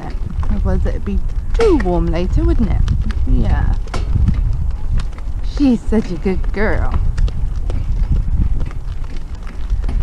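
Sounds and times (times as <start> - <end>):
carriage rumble: 0.0 - 10.0
hooves clip-clopping on gravel: 0.0 - 10.0.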